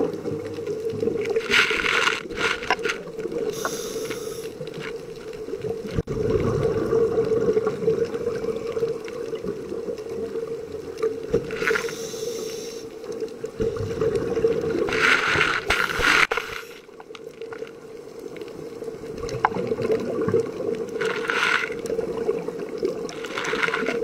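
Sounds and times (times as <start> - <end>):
scuba regulator air hissing: 3.4 - 4.6, 11.7 - 13.0, 14.9 - 16.9
bubbling exhalations: 5.5 - 9.5.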